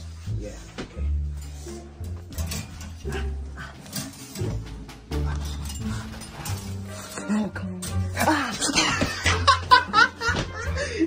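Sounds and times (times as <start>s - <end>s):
music with deep bass line: 0.0s - 11.0s.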